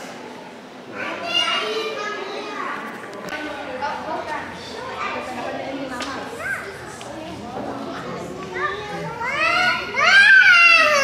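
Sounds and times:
children chattering and calling out: 0:00.0 - 0:11.0
murmur of voices: 0:00.0 - 0:11.0.

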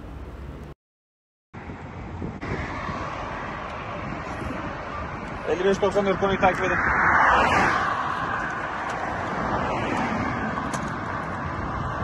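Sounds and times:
road traffic noise: 0:00.0 - 0:00.8, 0:01.6 - 0:12.0.

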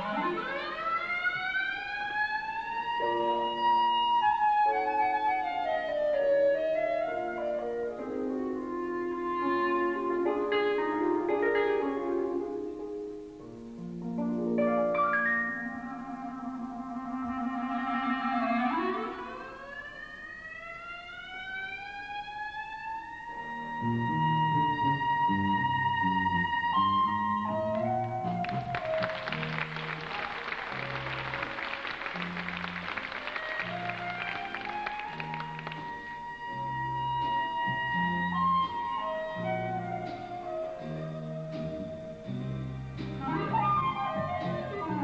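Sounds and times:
clarinet upward glissando: 0:00.0 - 0:12.8, 0:14.9 - 0:42.4, 0:43.2 - 0:45.0
band bass and instruments: 0:23.1 - 0:45.0.

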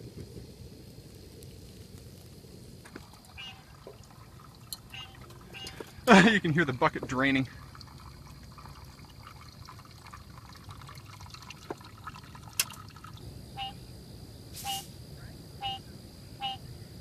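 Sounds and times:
water trickling and dripping: 0:02.8 - 0:13.2
short chirp: 0:14.6 - 0:14.9.

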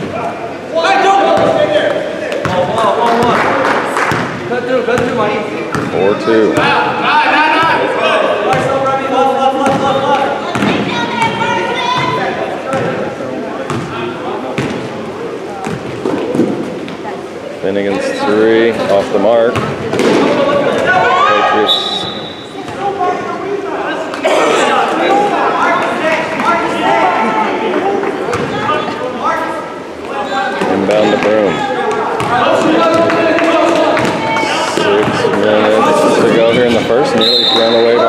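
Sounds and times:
basketball bouncing on gym floor: 0:05.0 - 0:06.0, 0:09.6 - 0:10.9, 0:13.7 - 0:13.9, 0:34.0 - 0:35.4.

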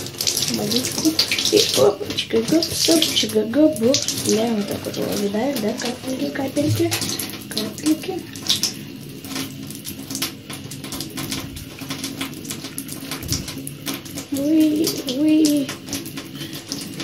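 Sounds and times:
water dripping and splashing: 0:00.0 - 0:17.0.

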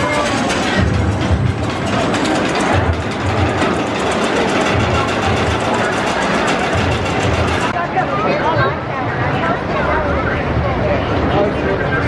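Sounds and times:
music playing: 0:00.0 - 0:07.7
roller coaster rumbling and clattering: 0:00.0 - 0:12.0.

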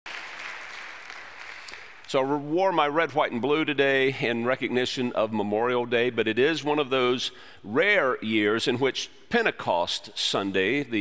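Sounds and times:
congregation applauding: 0:00.0 - 0:02.2.

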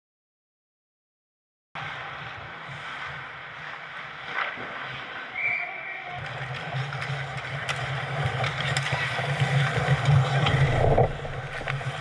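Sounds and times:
skates scraping ice: 0:01.8 - 0:12.0
sticks and puck clacking: 0:06.2 - 0:12.0.

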